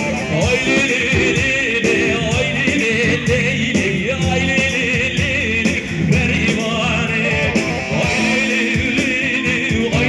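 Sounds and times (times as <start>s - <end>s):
ornamented lead melody: 0.0s - 10.0s
steady drum beat: 0.0s - 10.0s.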